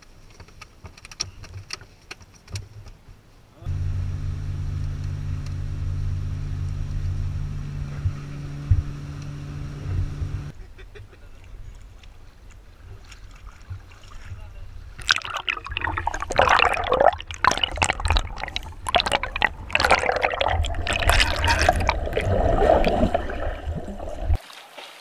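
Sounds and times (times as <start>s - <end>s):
boat engine humming: 3.7s - 10.5s, 14.8s - 24.4s.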